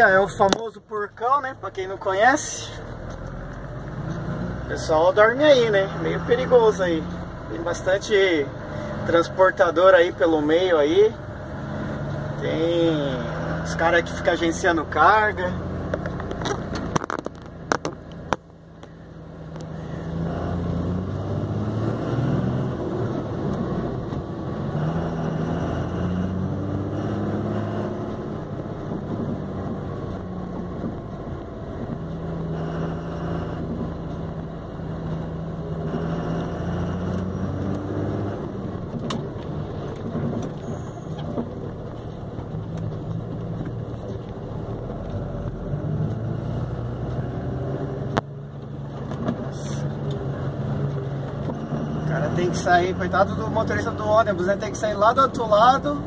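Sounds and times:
truck engine: 0:00.0 - 0:56.0.

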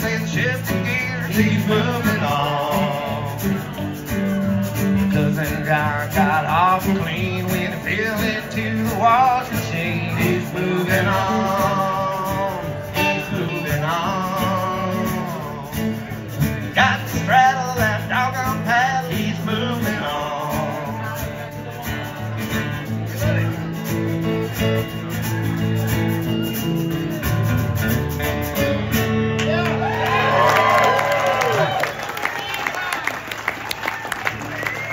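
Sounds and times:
electric guitar: 0:00.0 - 0:34.9.

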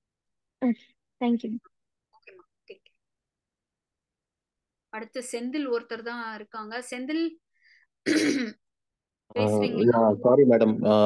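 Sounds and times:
person clearing throat: 0:08.0 - 0:08.6.

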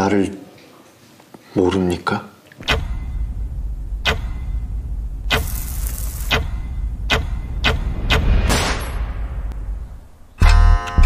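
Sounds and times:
steady low rumble: 0:02.9 - 0:10.4.

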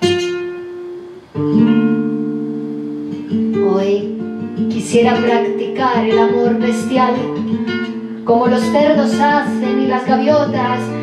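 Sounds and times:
flamenco guitar chords: 0:00.0 - 0:11.0.

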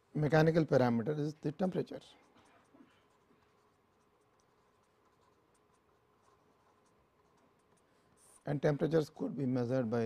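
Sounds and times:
faint steady hum: 0:00.0 - 0:10.0
pen scratching on paper: 0:02.1 - 0:08.5.

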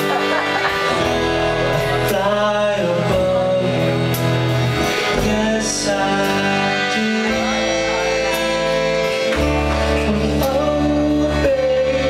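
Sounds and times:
acoustic guitar chords: 0:00.0 - 0:12.0
man singing: 0:00.0 - 0:12.0.

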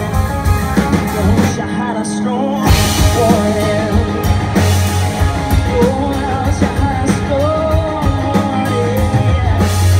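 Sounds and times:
man singing: 0:00.0 - 0:04.6, 0:05.4 - 0:09.9
country rock band playing: 0:00.0 - 0:09.9.

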